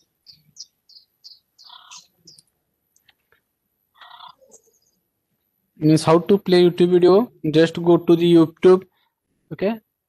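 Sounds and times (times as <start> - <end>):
bird chirps and calls: 0.0 - 2.5, 4.0 - 5.0.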